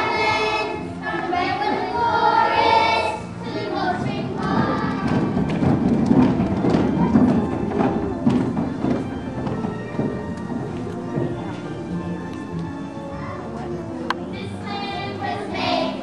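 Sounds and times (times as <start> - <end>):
children's voices: 0.0 - 5.5, 13.1 - 16.0
feet thumping: 3.6 - 12.8
children clapping: 4.4 - 9.7.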